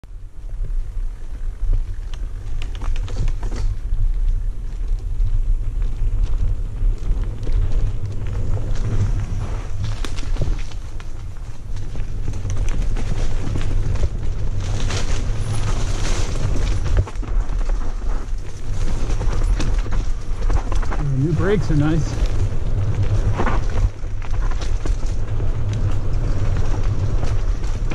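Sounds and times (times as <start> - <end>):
wind rumbling on microphone: 0.0 - 27.9
bike rattling over bumps: 0.1 - 27.9.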